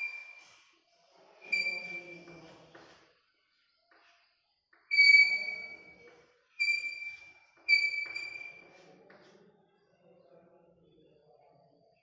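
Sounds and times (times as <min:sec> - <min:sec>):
chalk squealing on blackboard: 0:06.6 - 0:08.9.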